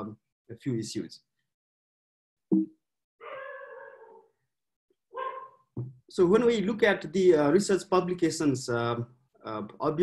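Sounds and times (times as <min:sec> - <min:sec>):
dog barking: 0:05.2 - 0:05.6.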